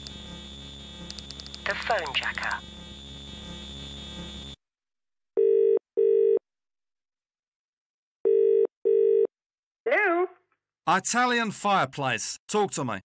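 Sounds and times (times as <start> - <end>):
steady buzzing hum: 0.0 - 4.6
telephone ringing tone: 5.4 - 6.4, 8.2 - 9.3.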